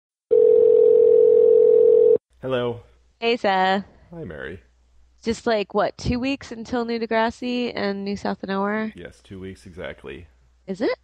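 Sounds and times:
telephone ringback tone: 0:00.3 - 0:02.2.

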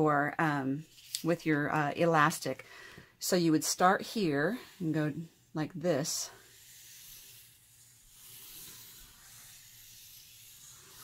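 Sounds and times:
marker scratching on paper: 0:03.7 - 0:11.0.

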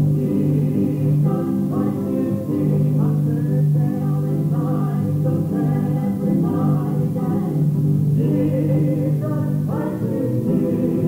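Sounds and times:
gospel singing voices: 0:00.0 - 0:11.0.

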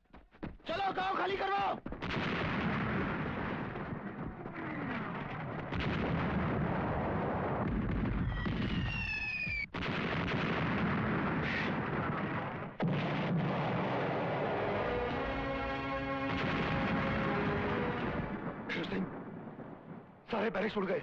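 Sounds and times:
shell explosions: 0:01.8 - 0:21.0
artillery fire: 0:02.0 - 0:20.8
whistling tone: 0:08.7 - 0:09.7.

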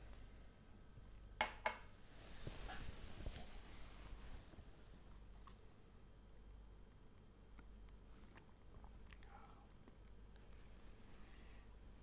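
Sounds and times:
glass knocking on tabletop: 0:01.4 - 0:01.8.

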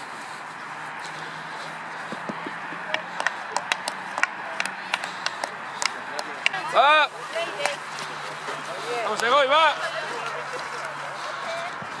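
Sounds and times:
outdoor background noise: 0:00.0 - 0:12.0
hockey sticks striking balls: 0:02.0 - 0:06.8.

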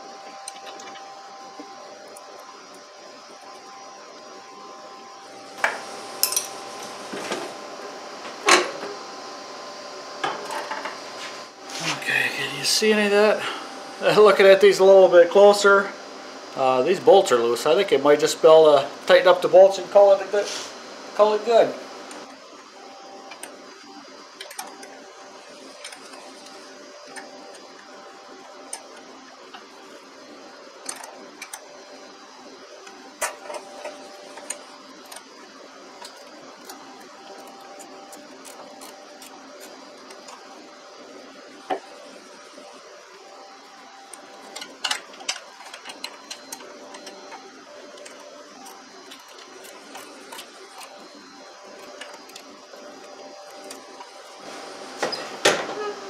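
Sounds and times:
steady hum: 0:00.0 - 0:56.0.

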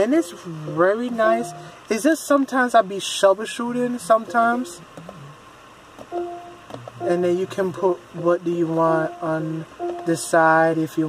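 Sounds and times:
man murmuring: 0:03.9 - 0:05.4, 0:07.1 - 0:08.0.

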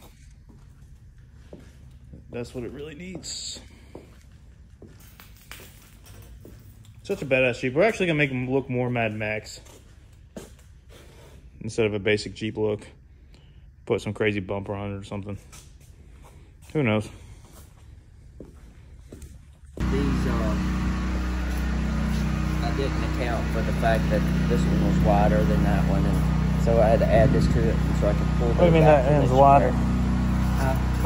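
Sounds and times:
low steady hum: 0:11.6 - 0:31.0
person speaking: 0:19.8 - 0:20.9, 0:22.0 - 0:31.0.

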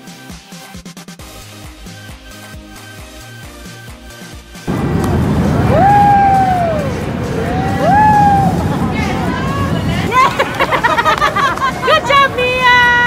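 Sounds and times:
music: 0:00.0 - 0:13.0
amusement ride din: 0:04.7 - 0:13.0.

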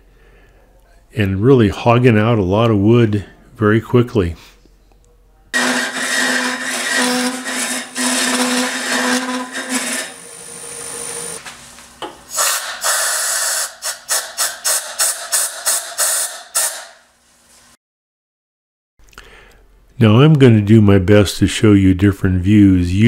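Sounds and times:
lathe tool scraping wood: 0:05.6 - 0:11.4.

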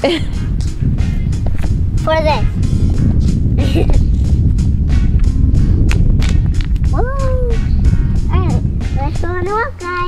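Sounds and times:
wind buffeting microphone: 0:00.0 - 0:10.0
child calling out: 0:07.0 - 0:07.6.

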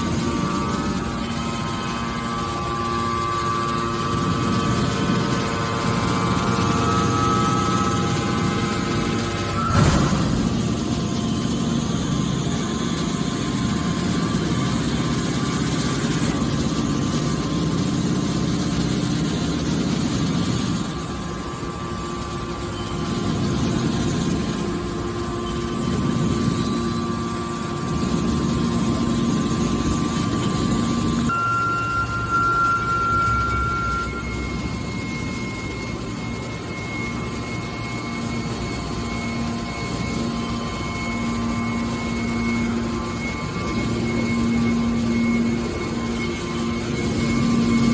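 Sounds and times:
hydraulic baler running: 0:00.0 - 0:47.9
thin steady whine: 0:00.0 - 0:47.9.

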